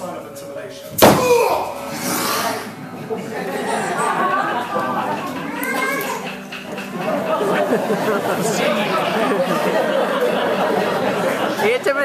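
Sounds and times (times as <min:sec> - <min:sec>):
people chattering in a hall: 0:00.0 - 0:12.0.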